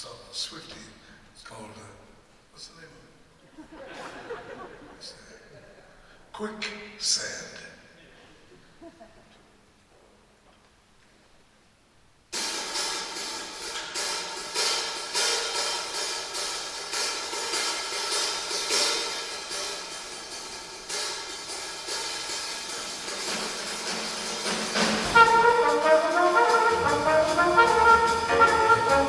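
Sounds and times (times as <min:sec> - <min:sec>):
cymbal and drum strokes: 0:12.3 - 0:29.0
small jazz band playing: 0:12.4 - 0:29.0
brass horn melody: 0:23.1 - 0:29.0.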